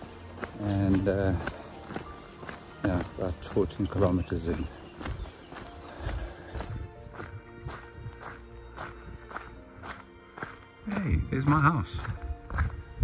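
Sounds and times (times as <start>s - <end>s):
footsteps on gravel: 0.0s - 13.0s
soft background music: 0.0s - 13.0s.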